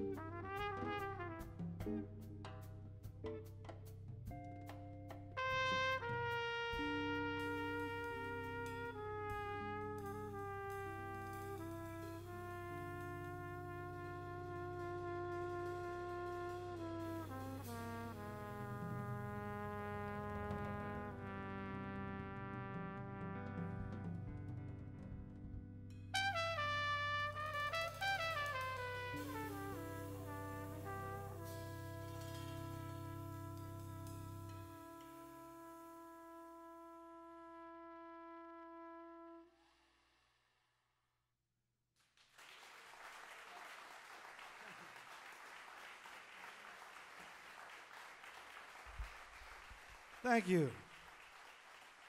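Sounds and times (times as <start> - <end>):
jazz trumpet: 0.0 - 40.0
drum kit cymbals: 6.6 - 18.8, 27.3 - 36.0.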